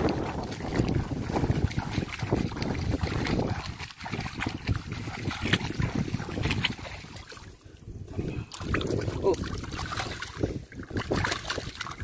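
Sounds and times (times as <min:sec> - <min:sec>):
splashing in shallow water: 0:00.0 - 0:12.0
wind on microphone: 0:00.0 - 0:12.0.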